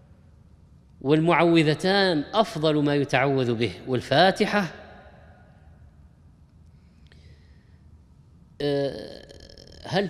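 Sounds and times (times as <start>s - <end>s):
man speaking: 1.0s - 4.7s, 8.6s - 10.0s
man's low throat sound: 8.8s - 9.9s.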